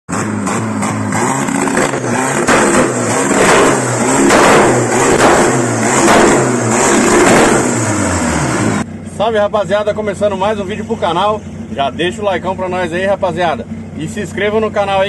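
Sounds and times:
car engine revving at limiter: 0.1 - 8.9.

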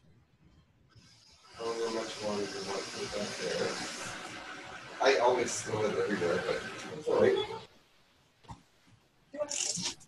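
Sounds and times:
steady hiss: 1.0 - 7.4
muffled talking: 1.6 - 4.0, 5.0 - 7.7.

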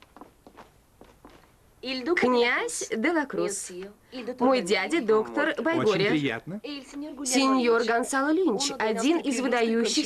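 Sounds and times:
soft footsteps on tiled floor: 0.0 - 1.7.

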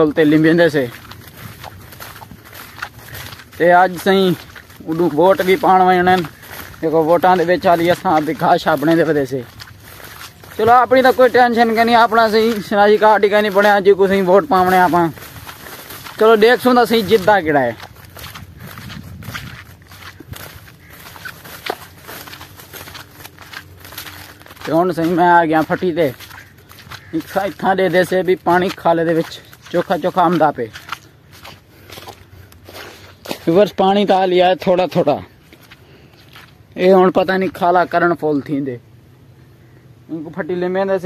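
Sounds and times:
soft footsteps on soil: 0.0 - 41.0.

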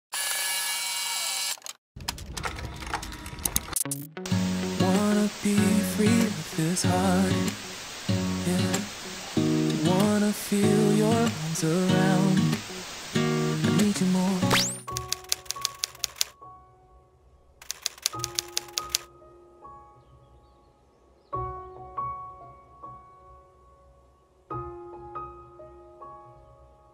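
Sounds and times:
camcorder mechanical whir: 0.1 - 1.8
music: 3.8 - 26.9
typewriter keys clacking: 14.9 - 16.4, 17.6 - 19.1.

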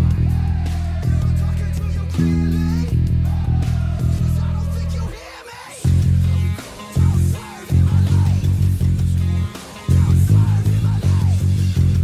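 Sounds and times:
electric bass playing low notes: 0.0 - 5.2, 5.8 - 12.0
rock drums: 0.0 - 12.0.

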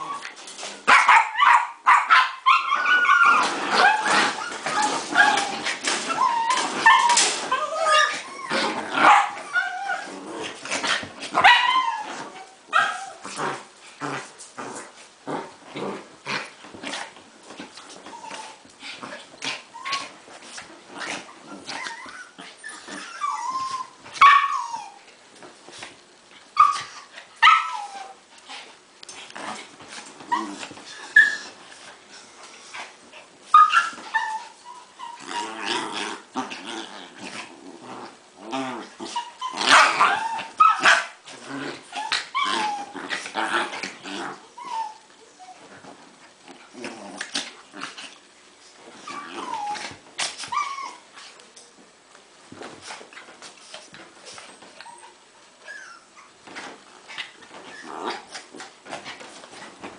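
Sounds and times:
dogs yipping and whining: 0.0 - 10.2, 11.4 - 13.3, 17.9 - 18.7, 19.7 - 20.2, 21.2 - 25.1, 26.6 - 28.2, 30.2 - 31.6, 33.5 - 35.9, 39.0 - 43.2, 44.4 - 45.9, 49.0 - 51.3, 54.3 - 56.4, 57.2 - 58.4
dogs growling: 3.2 - 23.9, 35.0 - 40.6, 41.2 - 45.0, 46.3 - 48.3, 48.9 - 50.0, 56.8 - 59.7.

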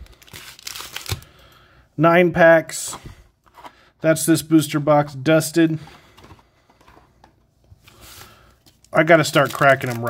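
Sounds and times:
foil pack rustling: 8.0 - 10.0.

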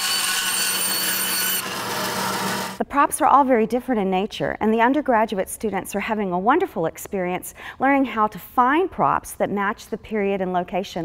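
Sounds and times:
band saw cutting cardboard tube: 0.0 - 2.8.

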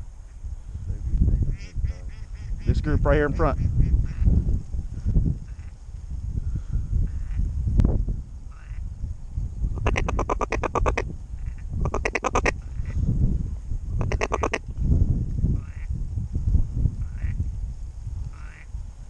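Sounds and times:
duck call quacks: 9.8 - 12.6, 14.0 - 14.6.

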